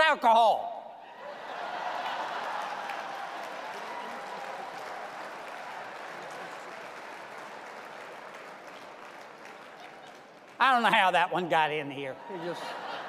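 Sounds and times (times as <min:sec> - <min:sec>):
large audience applauding: 0:01.3 - 0:11.6.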